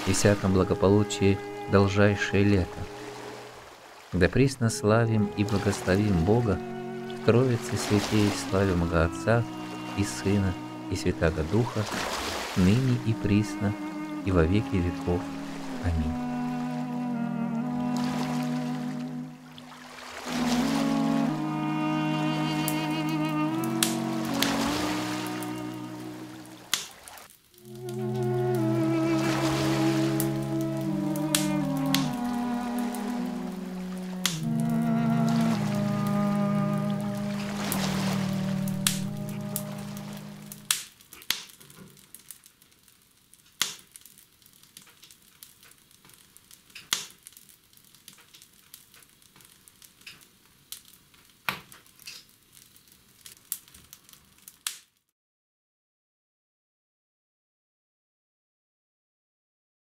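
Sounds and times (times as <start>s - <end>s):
slow music with sustained chords: 0.0s - 26.8s, 27.6s - 40.8s
wood fire crackling and popping: 23.6s - 25.8s, 26.4s - 28.7s, 30.2s - 34.9s, 38.5s - 55.1s.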